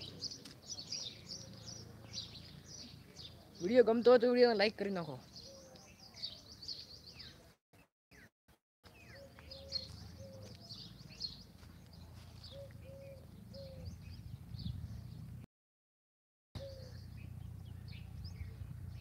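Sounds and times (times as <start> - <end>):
small birds chirping: 0.0 - 15.4, 16.6 - 19.0
dove cooing: 9.1 - 10.8, 12.4 - 14.1, 16.6 - 17.2.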